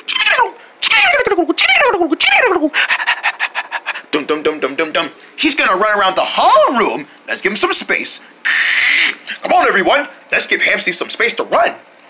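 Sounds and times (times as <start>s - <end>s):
person squealing: 0.0s - 4.1s, 8.4s - 9.4s
rapid panting chatter: 2.7s - 4.1s.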